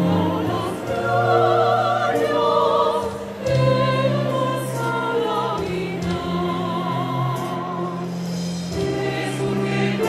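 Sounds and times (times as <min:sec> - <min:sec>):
choir singing held notes: 0:00.0 - 0:10.0.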